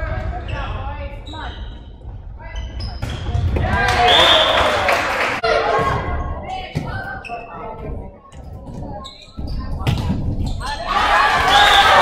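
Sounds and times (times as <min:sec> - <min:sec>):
crowd cheering: 0:03.7 - 0:05.7, 0:10.9 - 0:12.0.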